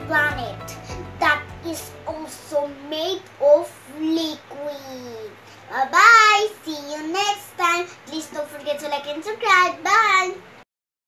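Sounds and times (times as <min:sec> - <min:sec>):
girl's sing-song voice: 0:00.0 - 0:03.8.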